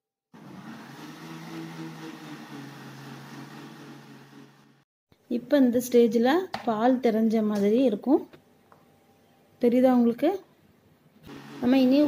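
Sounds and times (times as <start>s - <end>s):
mixer grinder motor running: 0.3s - 4.8s, 11.2s - 12.0s.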